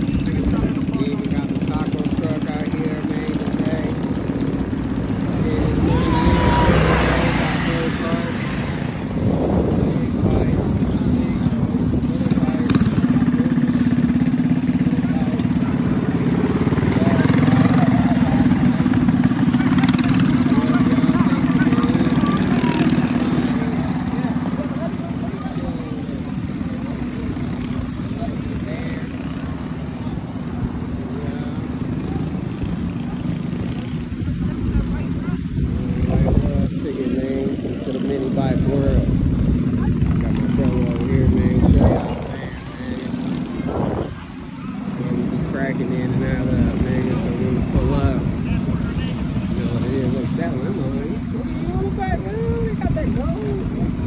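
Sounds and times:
mini bike engine droning: 0:00.0 - 0:54.0
people talking: 0:00.0 - 0:54.0.

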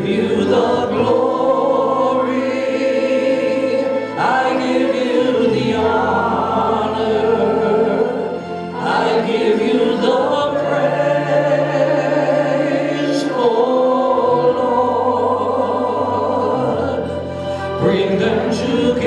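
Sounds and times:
group singing worship song: 0:00.0 - 0:19.0
keyboard accompaniment: 0:00.0 - 0:19.0.

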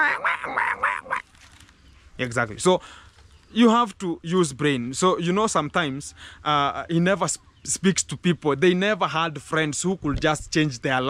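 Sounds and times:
man imitating donkey braying: 0:00.0 - 0:01.2.

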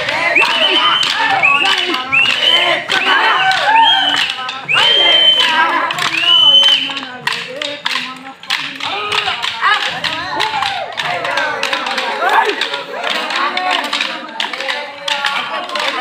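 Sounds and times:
voices calling out: 0:00.0 - 0:16.0
wooden sticks clacking: 0:00.0 - 0:16.0.

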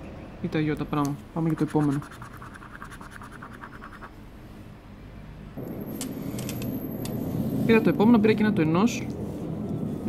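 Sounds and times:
scratch card being scraped: 0:01.5 - 0:04.1.

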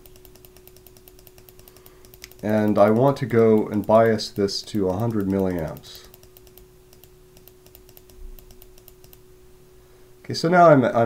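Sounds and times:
computer keys clicking: 0:00.0 - 0:09.2
faint steady hum: 0:00.0 - 0:11.0.

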